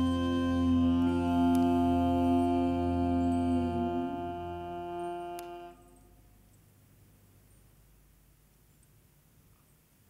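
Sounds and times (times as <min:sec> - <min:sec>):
hurdy-gurdy drone chord: 0:00.0 - 0:06.1.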